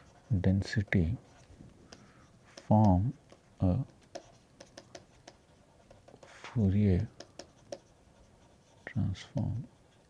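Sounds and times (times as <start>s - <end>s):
stylus tapping and scratching: 0.0s - 10.0s.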